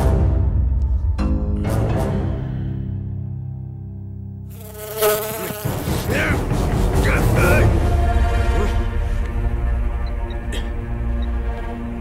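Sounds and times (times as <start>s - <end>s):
housefly buzzing: 4.5s - 8.6s.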